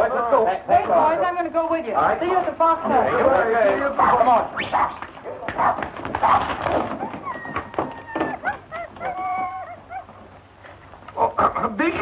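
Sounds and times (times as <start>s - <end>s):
dog whining: 4.5s - 10.4s
dog whimpering: 6.3s - 10.4s.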